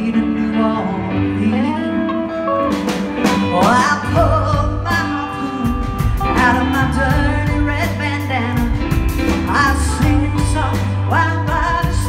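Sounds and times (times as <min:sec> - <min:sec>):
bass: 0:00.0 - 0:12.0
electric guitar: 0:00.0 - 0:12.0
keyboards: 0:00.0 - 0:12.0
woman singing lead: 0:00.0 - 0:12.0
drums steady beat: 0:02.7 - 0:12.0.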